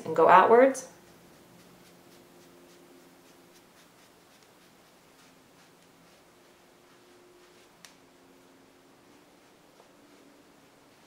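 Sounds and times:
faint steady hum: 0.0 - 11.0
sponge dabbing on skin: 0.9 - 11.0.

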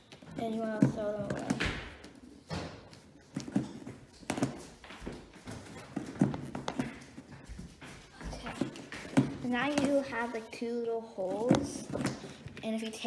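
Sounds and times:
handling noise: 0.0 - 10.2
craft tools tapping on paper and cardboard: 0.1 - 10.2, 11.2 - 12.7.

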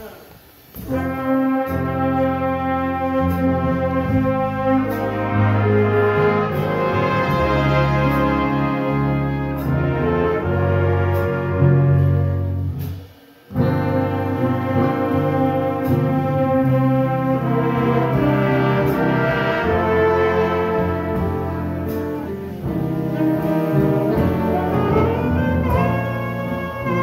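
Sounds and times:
jazz big band slow ballad: 0.3 - 27.0.

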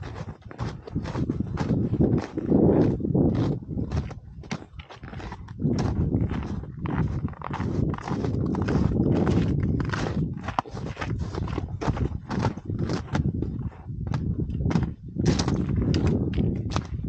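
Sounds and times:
footsteps crunching on icy snow: 0.0 - 17.0
wind rumble on microphone: 0.0 - 17.0.

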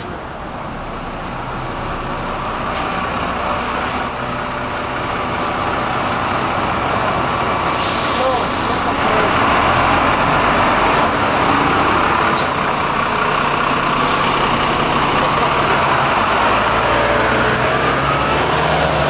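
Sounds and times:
bus diesel engine: 0.0 - 19.0
compressed air hiss: 7.8 - 8.8.

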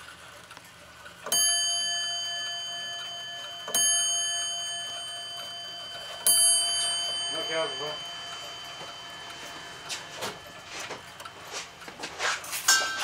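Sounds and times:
wall clock bell striking: 1.2 - 13.0.

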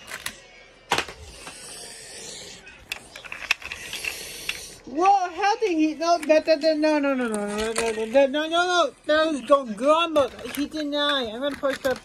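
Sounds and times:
plastic toys clicking: 0.0 - 1.8, 2.8 - 4.8, 5.8 - 12.0
plastic toys rustling: 0.0 - 1.9, 2.8 - 4.8, 5.4 - 12.0.

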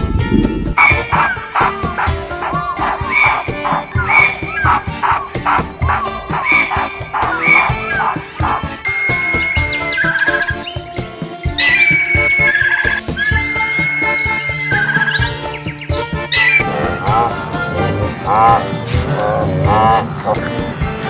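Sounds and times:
background music with steady beat: 0.0 - 21.0
held whistling tones: 0.8 - 10.9, 11.5 - 20.6.

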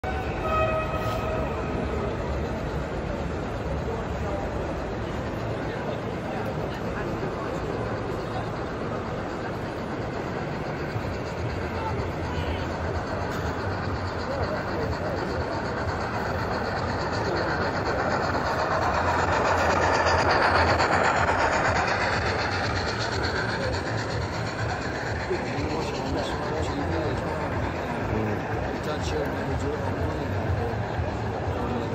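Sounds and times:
crowd chatter: 0.0 - 31.9
model train running on track: 0.0 - 31.9.

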